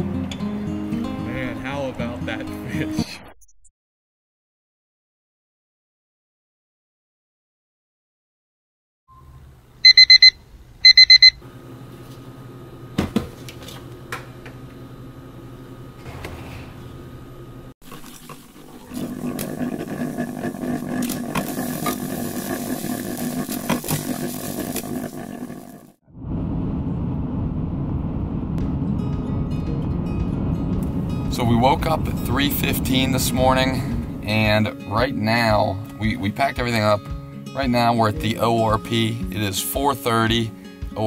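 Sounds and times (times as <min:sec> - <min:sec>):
alarm clock beeping: 0:09.8 - 0:11.4
coffee maker hissing: 0:17.8 - 0:26.0
low steady hum: 0:26.2 - 0:35.5.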